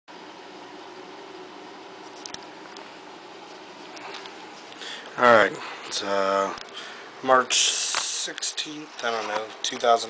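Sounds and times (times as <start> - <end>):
room tone hum and hiss: 0.1 - 10.0.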